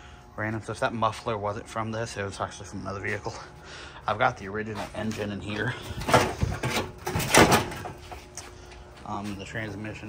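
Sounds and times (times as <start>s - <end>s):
sheet metal scraping and rattling: 5.1s - 8.2s.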